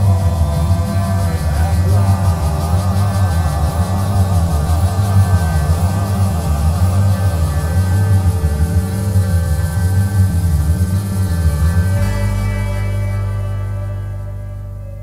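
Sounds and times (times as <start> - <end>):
heavy bass: 0.0 - 15.0
wavering lead line: 0.0 - 15.0.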